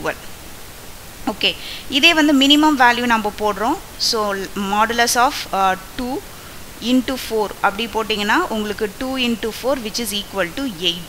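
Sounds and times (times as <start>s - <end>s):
person speaking: 0.0s - 0.3s, 1.2s - 11.0s
microphone hiss: 0.0s - 11.0s.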